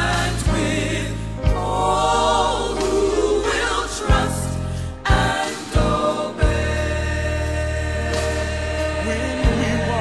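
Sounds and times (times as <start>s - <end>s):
bass notes: 0.0s - 10.0s
gospel choir singing with band: 0.0s - 10.0s.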